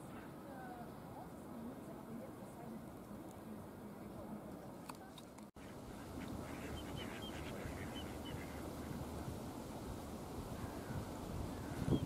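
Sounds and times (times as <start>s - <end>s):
low background noise: 0.0s - 12.0s
water bird calling: 5.6s - 9.4s, 10.4s - 12.0s.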